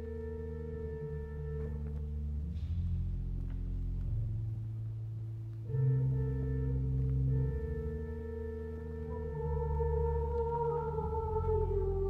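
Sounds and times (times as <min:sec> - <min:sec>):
organ chords: 0:00.0 - 0:12.0
choir singing: 0:09.1 - 0:12.0.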